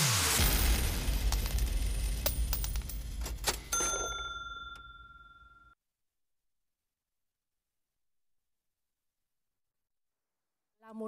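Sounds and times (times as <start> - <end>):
bell-like ding: 3.4 - 5.8.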